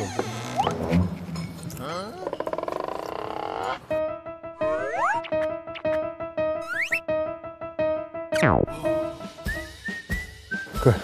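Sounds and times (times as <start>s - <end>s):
background music: 3.2s - 11.0s.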